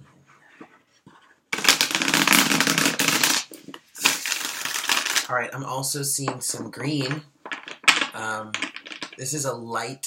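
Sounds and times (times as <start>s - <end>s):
cards being riffle-shuffled: 1.5s - 5.3s.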